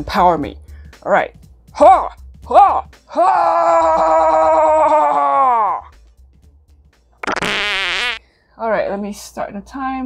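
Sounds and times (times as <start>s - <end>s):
background music: 0.0s - 9.7s.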